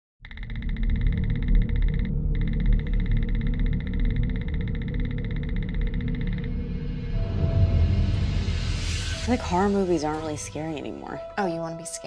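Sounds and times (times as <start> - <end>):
deep rumbling drone: 0.2 - 12.0
pulsing high-pitched electronic buzz: 0.3 - 7.5.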